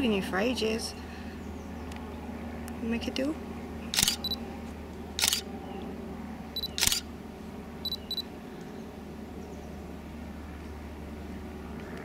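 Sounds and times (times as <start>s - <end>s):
camera shutter firing: 4.0s - 4.4s, 5.2s - 5.4s, 6.6s - 7.1s
short high autofocus beeps: 4.0s - 4.4s, 6.6s - 7.0s, 7.9s - 8.3s.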